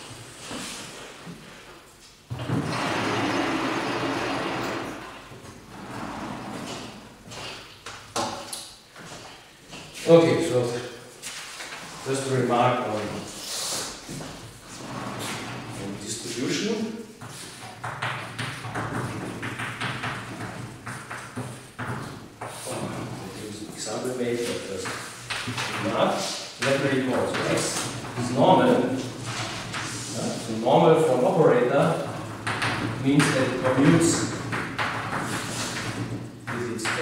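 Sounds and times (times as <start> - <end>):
sliding chalkboard panels rumbling: 0.0 - 8.4, 10.3 - 37.0
chalk tapping and scraping on blackboard: 17.2 - 22.7, 32.4 - 37.0.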